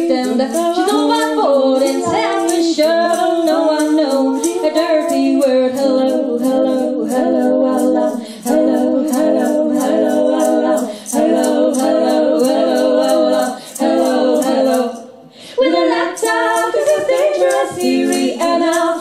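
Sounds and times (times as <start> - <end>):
women singing in harmony: 0.0 - 19.0.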